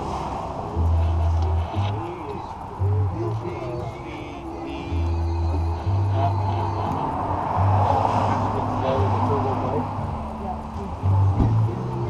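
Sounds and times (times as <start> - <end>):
music with deep bass line: 0.0 - 12.0.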